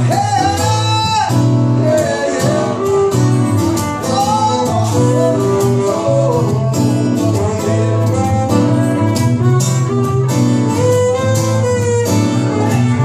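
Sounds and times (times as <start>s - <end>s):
electric bass: 0.0s - 13.0s
strummed acoustic guitar: 0.0s - 13.0s
sliding fiddle melody: 2.4s - 13.0s.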